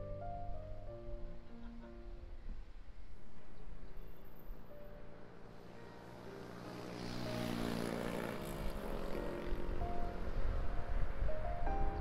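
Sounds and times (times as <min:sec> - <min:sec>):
passing vehicle engine: 0:05.4 - 0:12.0.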